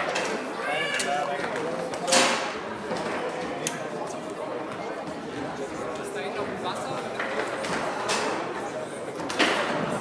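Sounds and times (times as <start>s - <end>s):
voices talking in a large hall: 0.0s - 10.0s.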